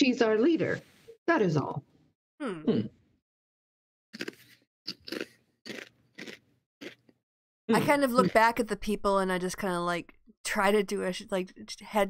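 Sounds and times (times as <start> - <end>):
short crunching noises: 4.2 - 7.2.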